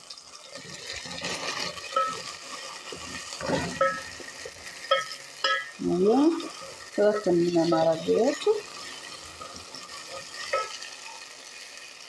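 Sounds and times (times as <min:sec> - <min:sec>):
vegetables sizzling in oil: 0:00.0 - 0:12.0
spatula clinking against pot: 0:01.8 - 0:11.2.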